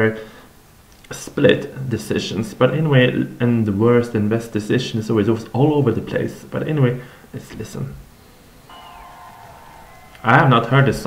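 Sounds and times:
high whistle sliding down: 8.7 - 11.0.

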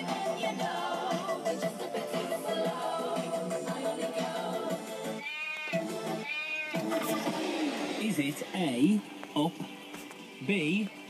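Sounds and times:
pop song from radio: 0.0 - 11.0.

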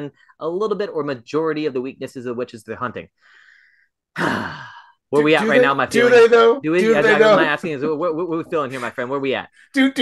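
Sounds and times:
person sighing: 4.1 - 5.0.

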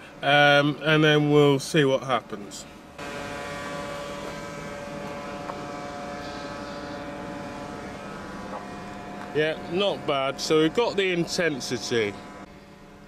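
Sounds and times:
motor running steadily: 2.9 - 13.0.

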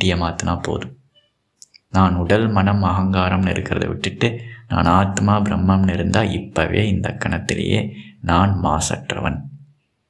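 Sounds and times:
man speaking: 0.0 - 9.7.

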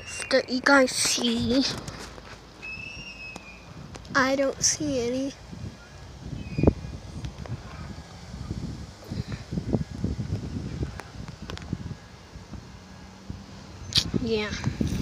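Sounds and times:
wind noise on microphone: 0.0 - 15.0.

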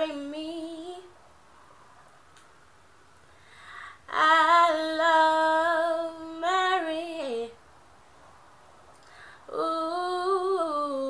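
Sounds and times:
woman singing unaccompanied: 0.0 - 1.2, 4.0 - 7.6, 9.5 - 11.0.

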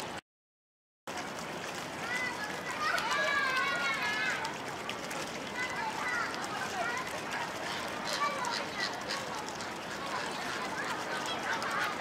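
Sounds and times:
children calling out: 2.0 - 4.6, 5.5 - 12.0.

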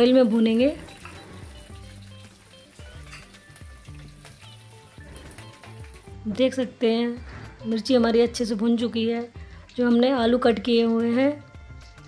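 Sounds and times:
background music: 0.0 - 12.0
spices sizzling in hot oil: 0.0 - 12.0.

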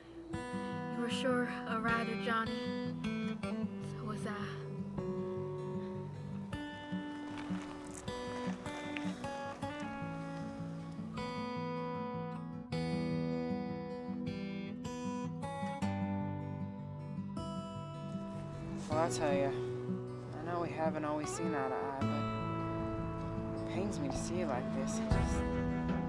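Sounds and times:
acoustic guitar film music: 0.0 - 26.0.

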